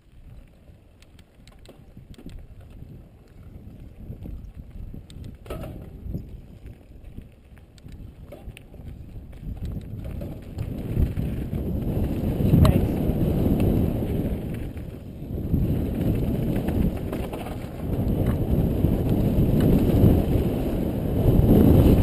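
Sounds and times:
bike rattling: 0.0 - 22.0
bike tyres rolling on dirt: 0.0 - 22.0
wind rushing over microphone: 0.0 - 22.0.

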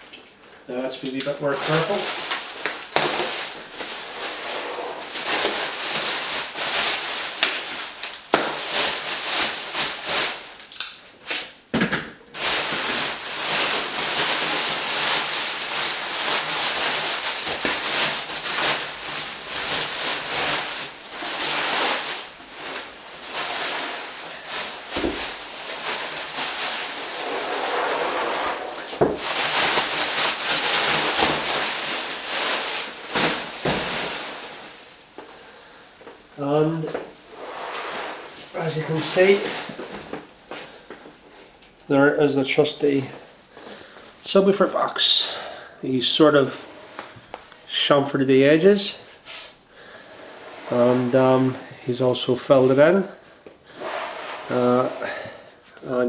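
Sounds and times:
plastic crinkling and rustling: 0.4 - 11.6, 12.3 - 56.0.

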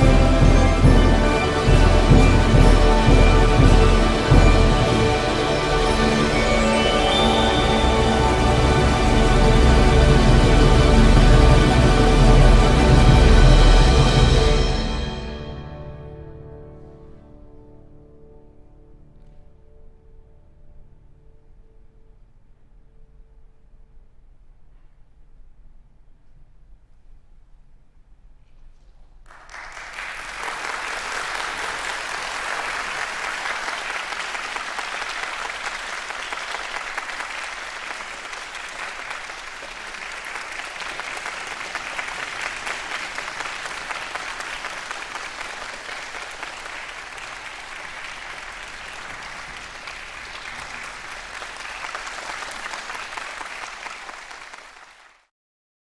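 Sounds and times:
audience applauding: 0.0 - 12.2, 29.3 - 55.3.

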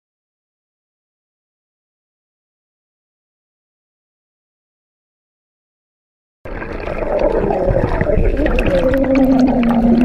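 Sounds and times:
underwater rush of churning water: 6.5 - 10.0.

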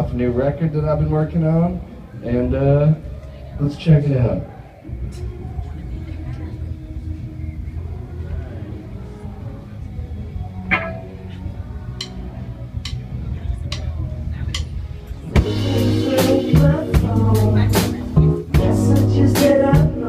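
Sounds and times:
live band playing: 10.4 - 20.0.

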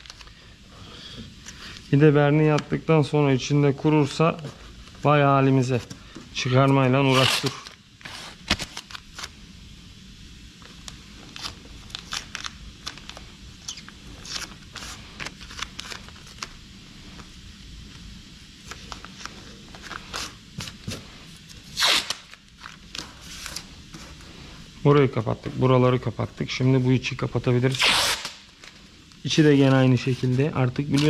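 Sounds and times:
masking tape ripping: 7.1 - 7.8, 11.3 - 16.5, 21.7 - 23.7, 27.6 - 28.5.

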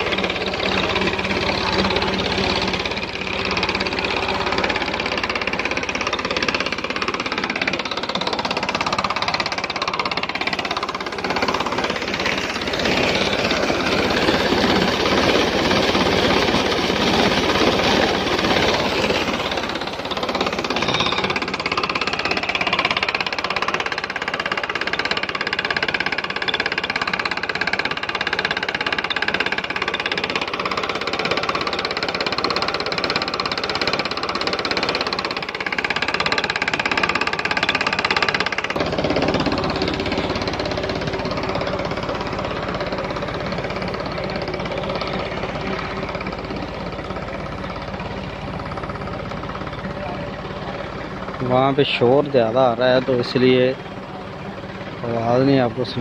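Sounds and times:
water gushing from pipe: 0.0 - 51.7
tractor engine running: 0.0 - 56.0.

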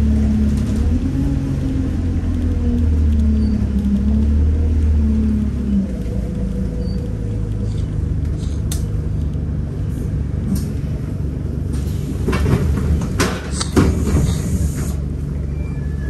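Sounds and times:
humming engine note: 0.0 - 15.9
bus engine rumble: 0.0 - 16.0.

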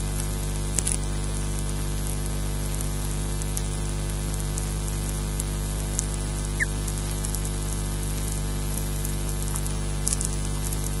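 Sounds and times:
low electrical hum: 0.0 - 11.0
raindrop ticks: 4.5 - 11.0.

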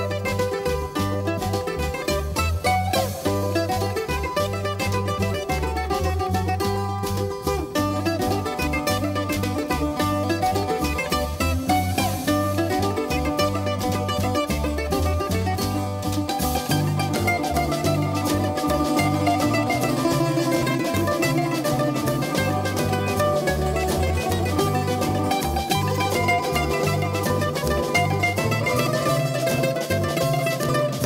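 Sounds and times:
plucked bouzouki folk music: 0.0 - 31.0
rhythmic bass line: 0.0 - 31.0.

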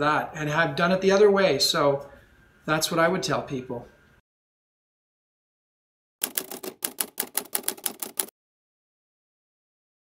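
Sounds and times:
keyboard key clicks: 6.2 - 8.3.

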